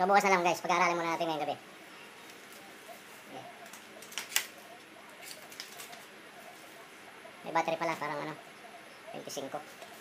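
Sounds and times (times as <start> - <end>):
plastic packaging clicks and rustles: 3.6 - 4.6, 5.2 - 6.1.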